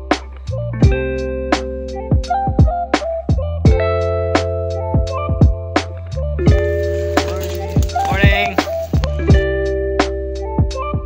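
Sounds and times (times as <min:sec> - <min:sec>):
deep kick drums: 0:02.1 - 0:03.9.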